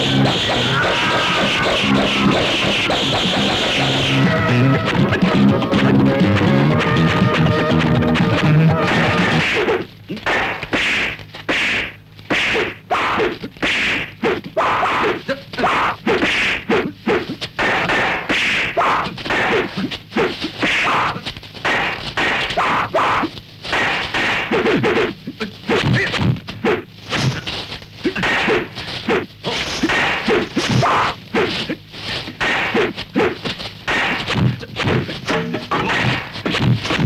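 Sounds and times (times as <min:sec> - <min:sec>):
staffs whooshing: 0:23.6 - 0:25.1, 0:25.7 - 0:37.0
dubbed fight whacks and thuds: 0:23.7 - 0:25.1, 0:32.3 - 0:37.0.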